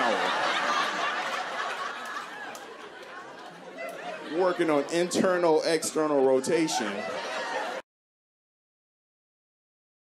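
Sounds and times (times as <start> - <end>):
audience laughter and murmur: 0.0 - 7.8.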